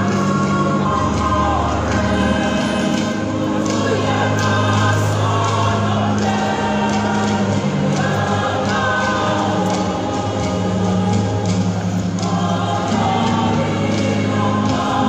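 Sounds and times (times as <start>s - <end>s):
choir singing: 0.0s - 15.0s.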